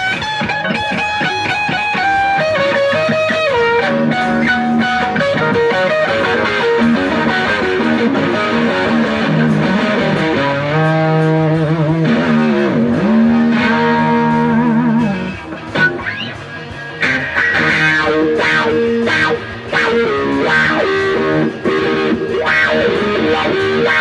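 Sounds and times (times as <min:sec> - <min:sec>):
electric guitar lead line: 0:00.0 - 0:24.0.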